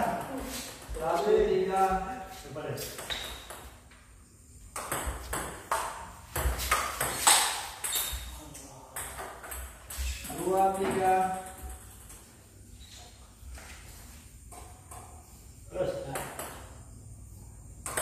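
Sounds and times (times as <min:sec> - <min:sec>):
ping-pong ball hits: 0:04.7 - 0:08.3.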